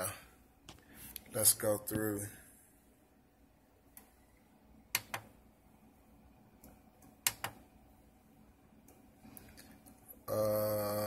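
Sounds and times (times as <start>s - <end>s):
buttons clicking on a panel: 4.9s - 5.3s, 6.6s - 7.6s.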